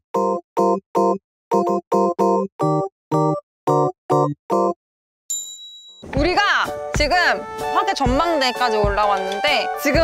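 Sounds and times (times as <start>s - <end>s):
high bright ding: 5.3s - 6.1s.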